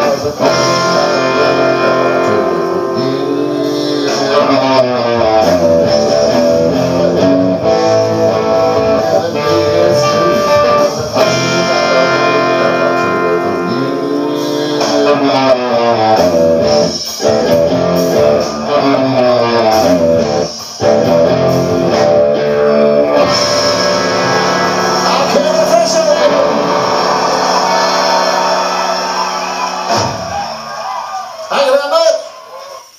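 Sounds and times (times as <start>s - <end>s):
electric guitar ringing chords: 0.0s - 30.7s
recorded band track: 0.0s - 32.9s.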